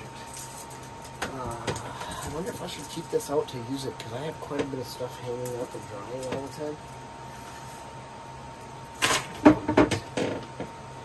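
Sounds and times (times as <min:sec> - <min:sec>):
faint steady hum: 0:00.0 - 0:11.0
items knocking and clattering: 0:09.0 - 0:10.7.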